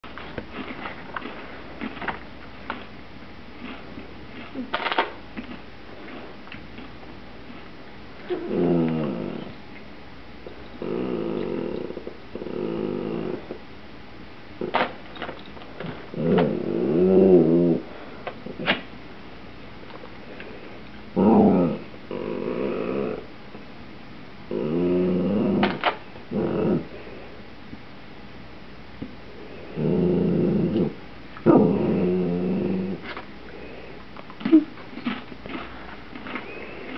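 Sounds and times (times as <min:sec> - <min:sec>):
dog growling: 0:08.2 - 0:09.6, 0:10.6 - 0:13.6, 0:15.8 - 0:18.8, 0:21.1 - 0:23.3, 0:24.5 - 0:27.0, 0:29.5 - 0:33.2
chip bag crinkling: 0:34.2 - 0:36.9.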